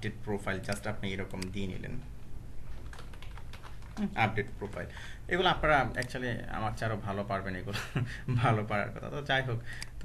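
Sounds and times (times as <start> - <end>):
keyboard typing: 2.7 - 5.1.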